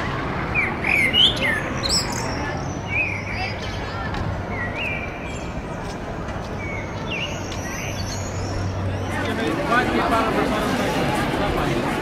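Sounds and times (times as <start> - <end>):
outdoor background noise: 0.0 - 12.0
small birds chirping: 0.5 - 9.3.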